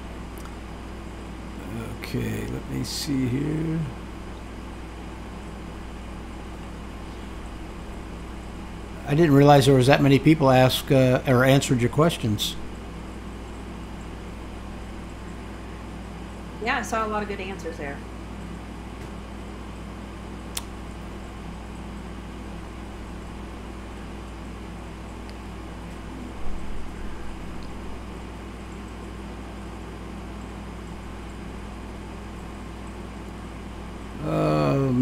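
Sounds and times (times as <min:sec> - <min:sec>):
fan-like hiss: 0:00.0 - 0:35.0
low electrical hum: 0:00.0 - 0:35.0
sharp click: 0:20.5 - 0:20.7.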